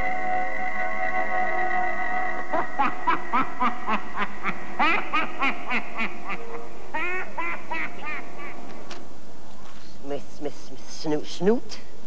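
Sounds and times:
eerie theme music: 0.0s - 8.7s
cackling laugh: 1.6s - 8.6s.

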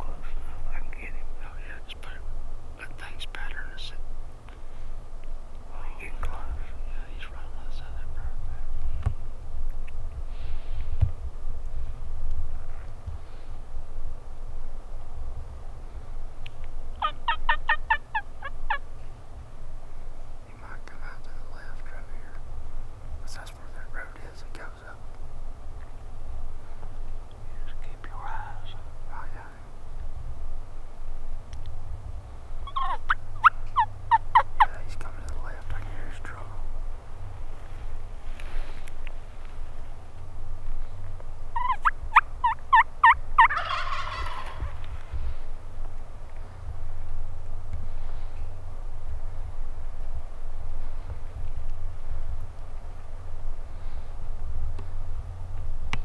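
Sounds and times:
wild turkey gobbling: 17.0s - 18.8s, 32.6s - 34.8s, 41.5s - 44.9s.

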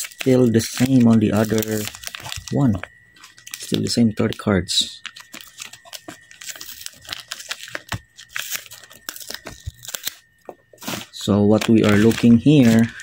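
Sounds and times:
plastic wrapper crinkling: 0.0s - 13.0s.

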